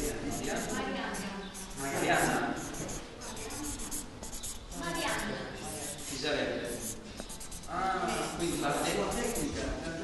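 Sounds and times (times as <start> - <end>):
scratchy writing on a board: 0.0 - 9.8.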